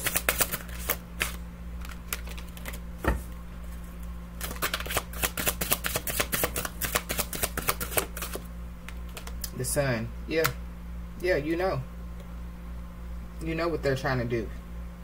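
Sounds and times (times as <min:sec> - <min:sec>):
cards being shuffled: 0:00.0 - 0:02.8, 0:03.7 - 0:09.4
steady low hum: 0:00.0 - 0:15.0.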